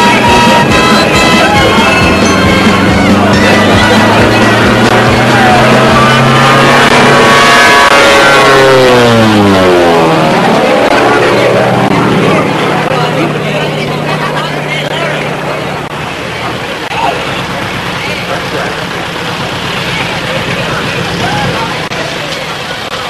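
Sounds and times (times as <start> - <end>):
propeller plane buzzing overhead: 0.0 - 23.0.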